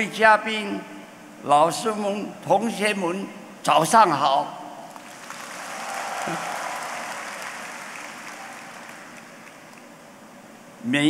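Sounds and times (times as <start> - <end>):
large audience applauding: 5.0 - 9.9.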